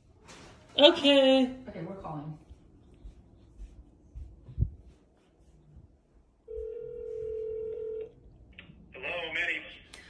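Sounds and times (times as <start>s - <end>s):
phone ringback tone: 6.5s - 8.2s.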